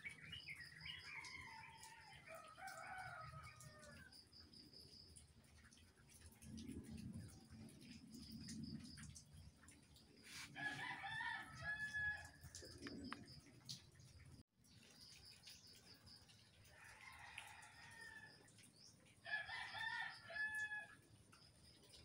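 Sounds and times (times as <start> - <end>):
distant rooster crowing: 1.1 - 4.0, 10.3 - 12.4.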